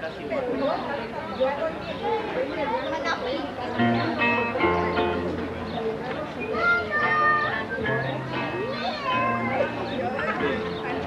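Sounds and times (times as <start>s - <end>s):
twelve-string guitar: 3.6s - 11.0s.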